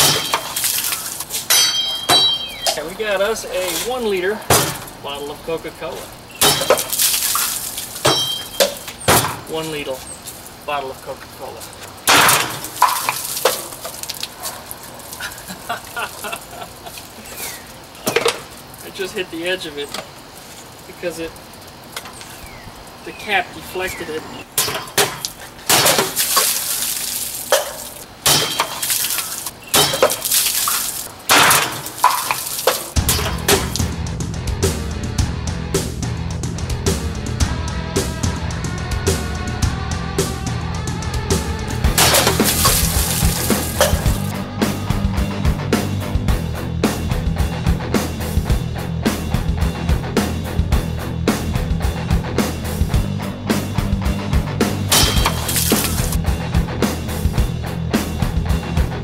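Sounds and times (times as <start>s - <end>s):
cola spraying and hissing: 0.0s - 1.5s, 5.9s - 9.0s, 9.6s - 24.2s, 25.1s - 28.1s, 28.7s - 33.0s, 42.0s - 44.4s, 55.1s - 56.2s
machete slashing plastic bottle: 24.6s - 33.8s, 42.0s - 44.2s, 54.9s - 56.2s
rock music: 33.0s - 59.0s.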